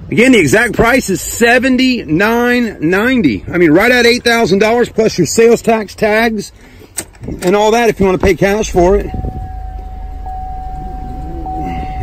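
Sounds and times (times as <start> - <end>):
car engine idling: 0.6 - 12.0
high-pitched whine: 8.4 - 12.0.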